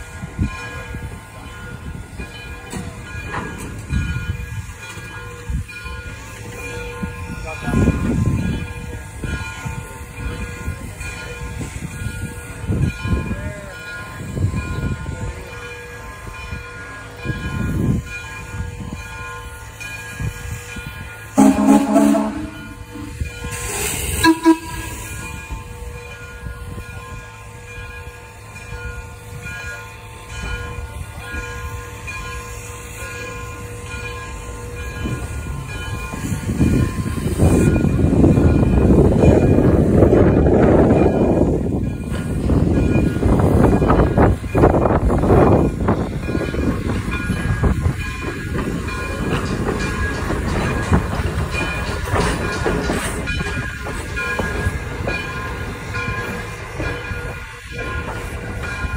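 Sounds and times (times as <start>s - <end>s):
steam locomotive rumbling: 0.0s - 58.9s
steam whistle blast: 21.4s - 25.2s
hiss of steam: 22.9s - 25.7s.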